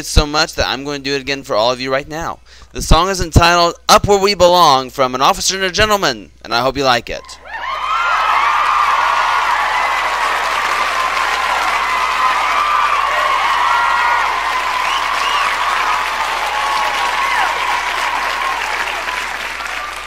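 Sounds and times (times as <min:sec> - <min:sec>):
crowd applauding and cheering: 0:07.5 - 0:20.0.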